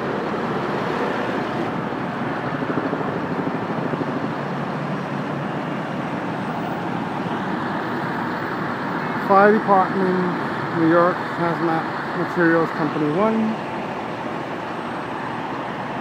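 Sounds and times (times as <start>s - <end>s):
city street traffic: 0.0s - 16.0s.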